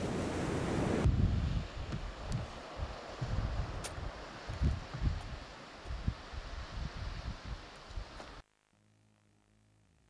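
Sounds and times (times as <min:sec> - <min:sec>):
wind buffeting microphone: 0:00.0 - 0:08.2
sea surf hissing: 0:00.0 - 0:08.4.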